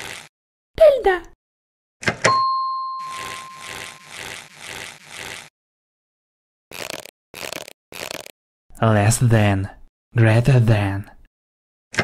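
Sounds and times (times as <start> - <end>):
electronic ding: 2.3 - 4.1.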